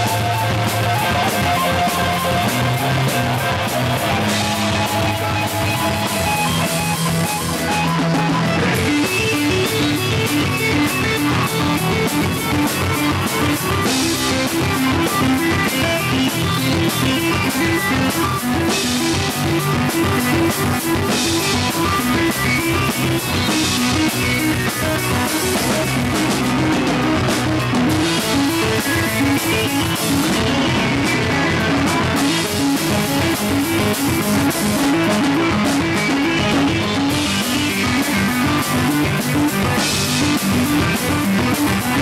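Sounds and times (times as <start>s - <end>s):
drum kit: 0.0s - 42.0s
electric guitar riff: 0.0s - 42.0s.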